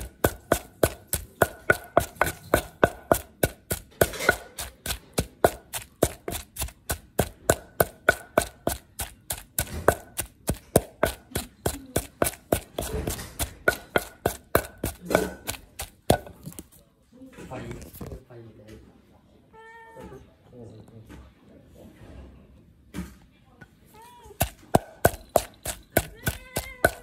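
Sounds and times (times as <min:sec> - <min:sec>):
wooden pestle pounding in mortar: 0:00.0 - 0:16.7, 0:24.4 - 0:27.0.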